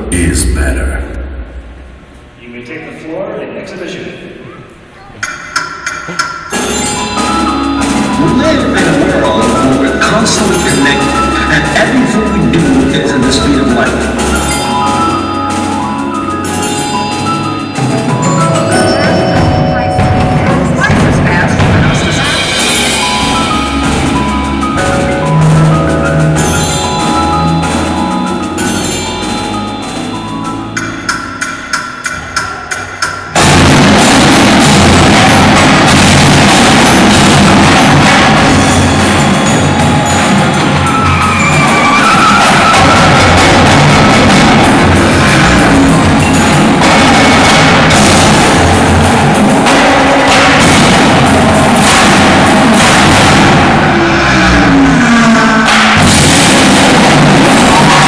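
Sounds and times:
sharp pitched strikes: 0:00.0 - 0:02.5, 0:05.2 - 0:58.0
mallet keyboards ringing: 0:05.2 - 0:54.0
percussion ensemble with marching drums: 0:05.2 - 0:58.0.

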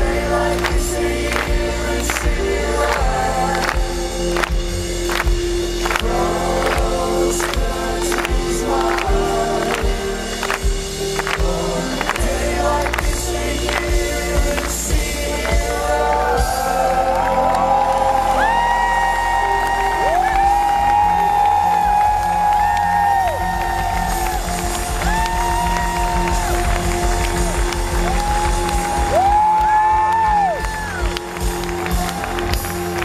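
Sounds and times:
man singing lead vocal: 0:00.0 - 0:04.8, 0:05.9 - 0:18.8
live rock band playing: 0:00.0 - 0:33.0.

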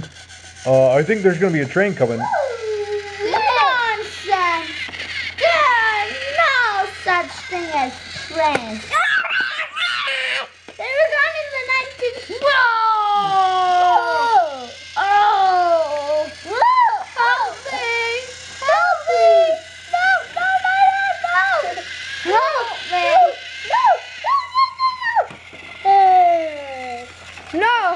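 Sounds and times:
children calling: 0:00.7 - 0:27.9.

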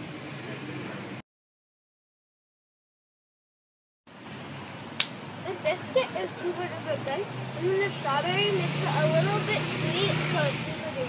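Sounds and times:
outdoor background hiss: 0:04.1 - 0:11.0.

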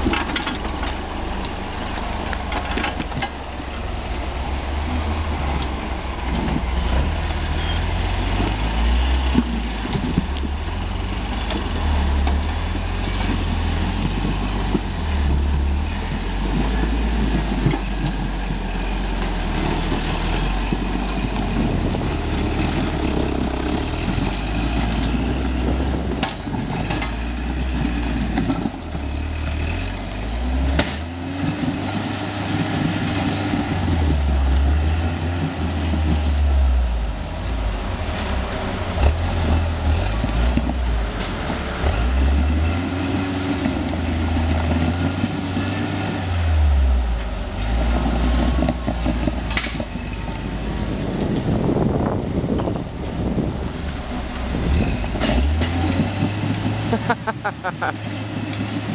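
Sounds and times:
buggy engine rumbling: 0:00.0 - 0:58.9.

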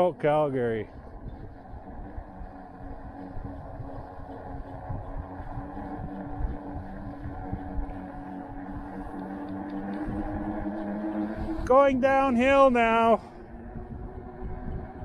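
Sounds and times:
electric bike motor hum: 0:00.0 - 0:15.0
wind rumble on microphone: 0:00.0 - 0:15.0.

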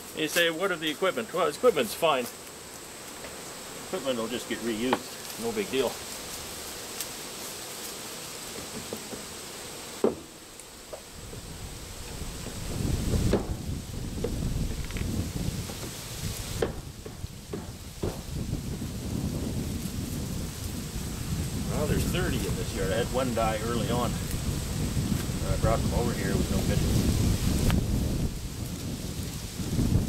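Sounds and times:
wooden hive frames knocking: 0:03.1 - 0:06.0, 0:07.9 - 0:18.6
wind buffeting microphone: 0:11.1 - 0:30.0.

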